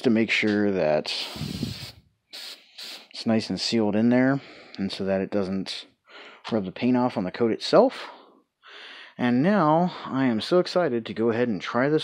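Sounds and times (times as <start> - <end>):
aerosol can spraying: 1.2 - 3.2.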